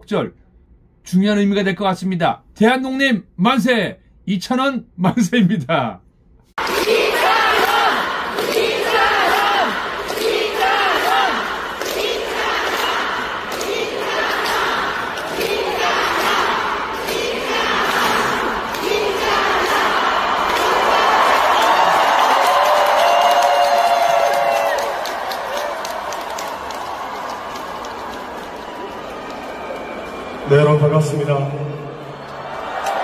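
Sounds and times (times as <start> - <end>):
audience chanting in unison: 6.6 - 22.8
crowd cheering: 6.6 - 33.0.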